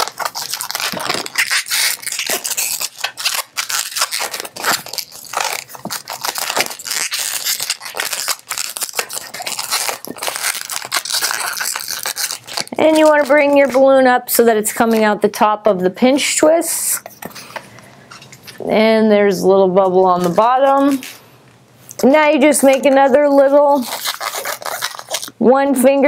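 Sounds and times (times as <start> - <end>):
balloon rubbing and creaking: 0.0 - 14.0.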